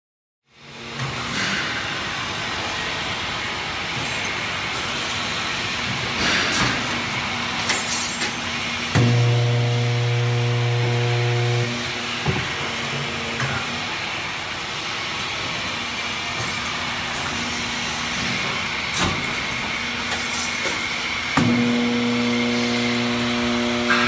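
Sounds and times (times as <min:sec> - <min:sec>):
loud low electrical hum: 0:00.5 - 0:24.0
machine drone: 0:08.7 - 0:24.0.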